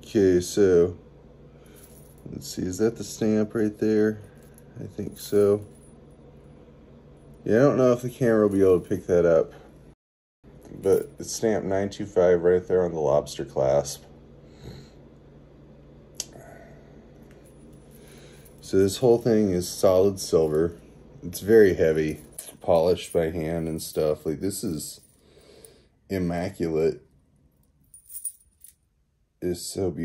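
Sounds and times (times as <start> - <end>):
faint steady hum: 0.0 - 30.0
chain bracelet clinking: 27.5 - 28.9.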